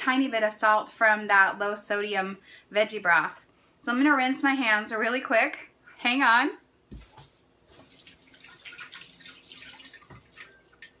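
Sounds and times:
tap water splashing on hands: 7.7s - 11.0s.

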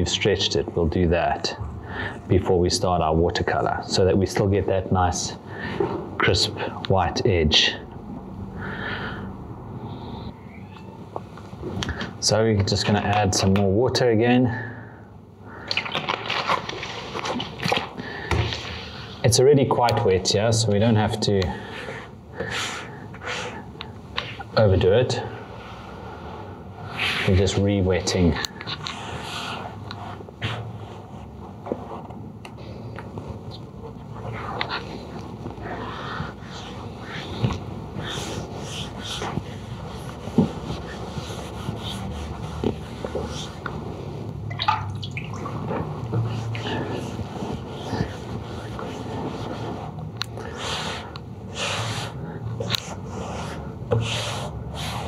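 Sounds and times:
wet paper squelching: 15.6s - 19.1s
hands rubbing wet paper: 15.7s - 19.2s, 26.8s - 32.1s, 32.7s - 55.0s.

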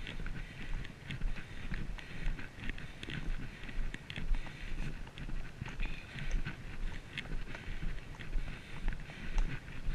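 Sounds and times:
horse hooves on paved path: 0.0s - 9.9s
wind rumble on microphone: 0.0s - 9.9s.

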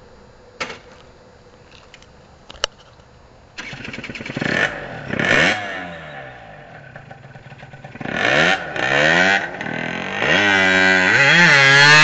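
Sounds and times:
two-stroke engine running: 3.6s - 12.0s.

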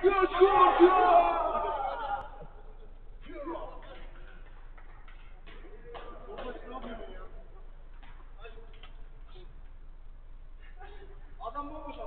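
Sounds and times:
steady low hum: 1.2s - 12.0s.

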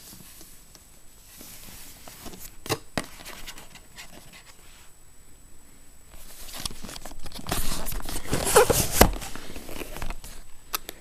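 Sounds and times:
cardboard box rustling: 6.2s - 10.4s.

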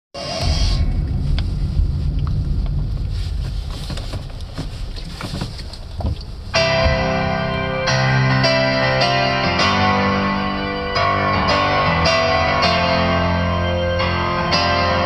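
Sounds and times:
low rumble in car cabin: 0.2s - 7.5s
song with keyboard and guitar: 6.6s - 15.0s.

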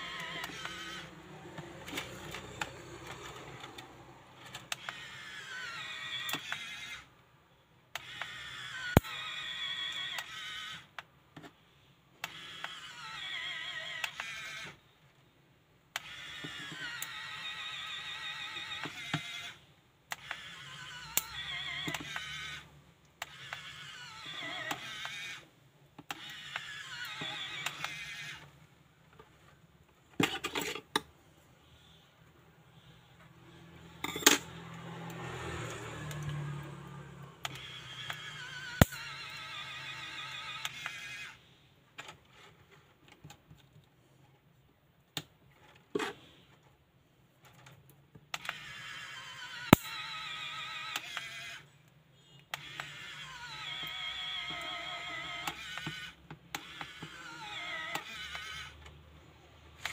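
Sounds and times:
pen motor whirring: 0.0s - 7.2s, 7.9s - 11.6s, 12.2s - 14.9s, 15.9s - 28.6s, 32.8s - 41.6s, 48.3s - 59.9s.

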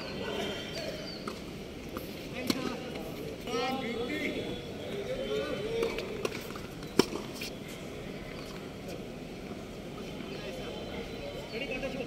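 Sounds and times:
voices: 0.0s - 9.1s
outdoor background hiss: 0.0s - 12.0s.

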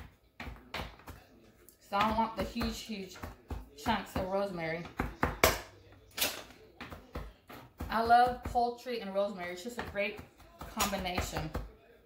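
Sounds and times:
knife tapping cutting board: 6.8s - 8.6s.

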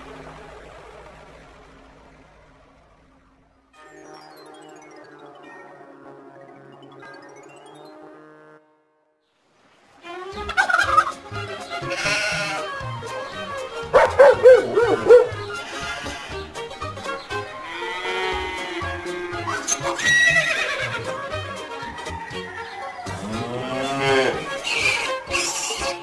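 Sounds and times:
turkey gobbling: 10.4s - 11.3s, 13.9s - 16.2s
background music with steady beat: 10.6s - 26.0s
goat bleating: 11.8s - 12.7s, 15.5s - 16.6s.

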